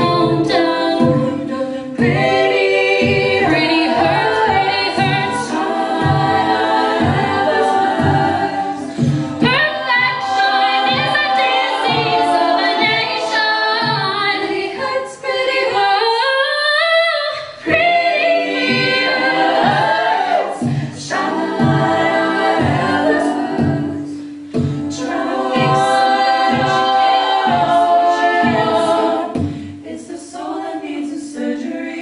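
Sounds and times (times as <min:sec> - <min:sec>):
beatboxed vocal percussion: 0:00.0 - 0:15.4, 0:17.3 - 0:31.8
women singing a cappella harmonies: 0:00.0 - 0:32.0.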